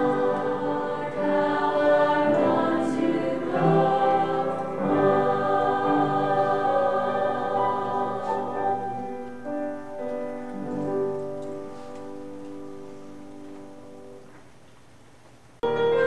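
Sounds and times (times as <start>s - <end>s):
mixed choir singing: 0.0s - 9.3s.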